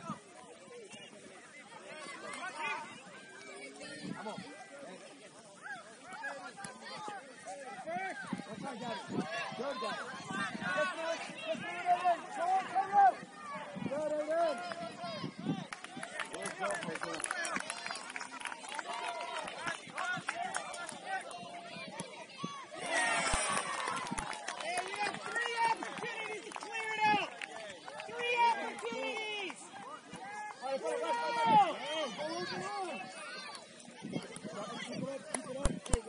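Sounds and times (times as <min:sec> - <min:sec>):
crowd shouting and calling: 0:00.8 - 0:17.6, 0:18.8 - 0:36.0.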